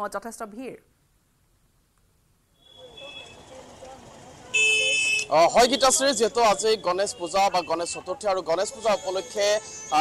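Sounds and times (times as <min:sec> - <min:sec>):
faint street noise: 0:00.0 - 0:10.0
vehicle horn honk: 0:02.6 - 0:03.5, 0:04.5 - 0:08.1.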